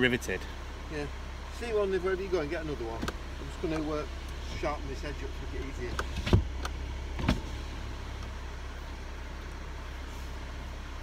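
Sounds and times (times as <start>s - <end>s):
car cabin hum: 0.0s - 11.0s
thump: 7.2s - 7.5s.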